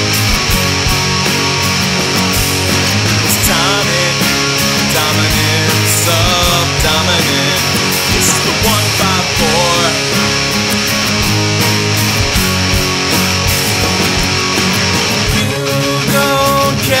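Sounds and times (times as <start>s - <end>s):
bending lead guitar line: 0.0s - 17.0s
rock music with electric guitar: 0.0s - 17.0s.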